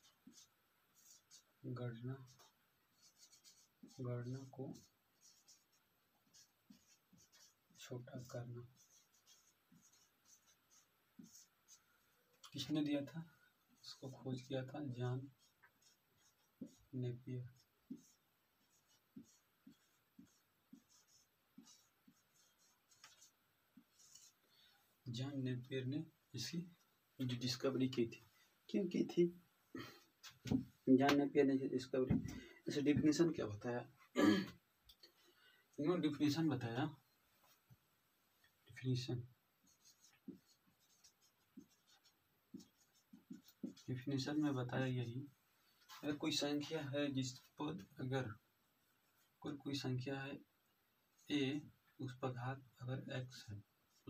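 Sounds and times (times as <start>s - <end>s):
marker squeaking on a whiteboard: 4.8s - 11.8s, 15.3s - 17.0s, 17.9s - 24.4s, 39.7s - 44.0s.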